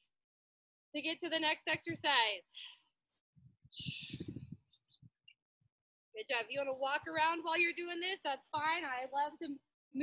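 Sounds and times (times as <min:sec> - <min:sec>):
rush of air: 0:03.7 - 0:04.6.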